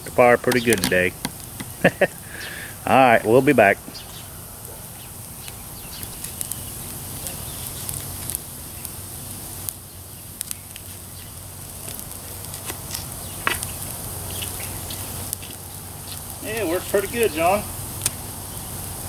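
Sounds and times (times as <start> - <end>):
sharp pops from fire: 0.0 - 2.7, 3.9 - 19.0
wood fire crackling: 0.0 - 19.0.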